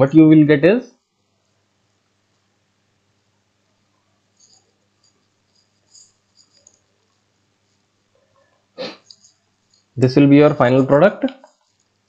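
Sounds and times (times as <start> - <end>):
stylus squeaking on tablet: 4.4 - 7.2.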